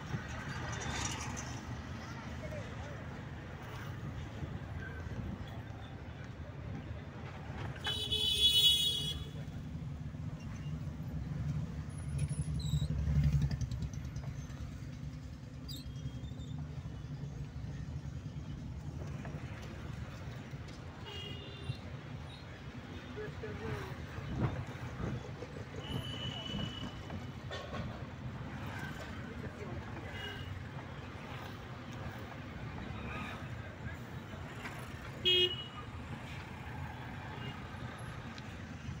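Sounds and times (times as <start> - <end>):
car engine and road rumble: 0.0 - 39.0
vehicle horn toot: 35.2 - 35.7.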